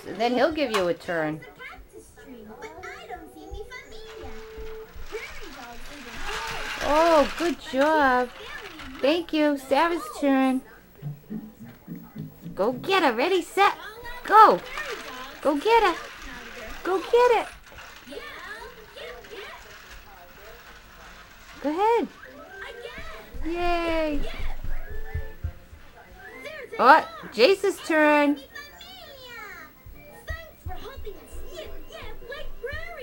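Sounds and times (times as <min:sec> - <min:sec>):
rustling noise: 0:03.1 - 0:26.8.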